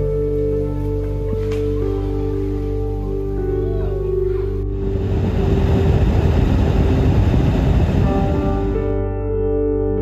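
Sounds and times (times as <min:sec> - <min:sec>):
background music: 0:00.0 - 0:10.0
rushing rumbling noise: 0:04.6 - 0:09.0.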